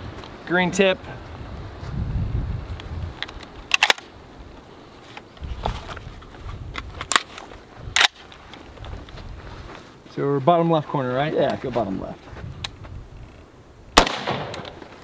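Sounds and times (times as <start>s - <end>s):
rifle loading clicks: 3.2s - 4.1s, 6.8s - 8.6s, 14.0s - 14.8s.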